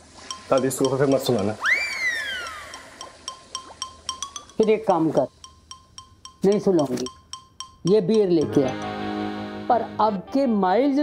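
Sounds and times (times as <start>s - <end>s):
swooping whistle-like tone: 1.6s - 2.9s
quick clicking percussion: 5.4s - 8.8s.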